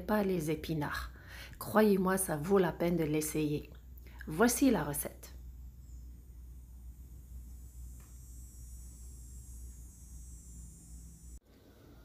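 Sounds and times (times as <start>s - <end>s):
low hum with high hiss: 0.0s - 12.0s.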